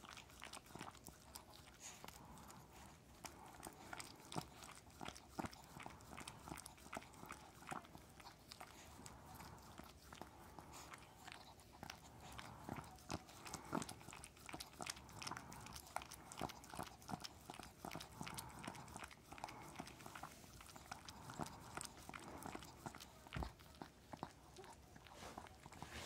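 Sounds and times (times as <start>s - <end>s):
dog licking: 0.0s - 26.0s.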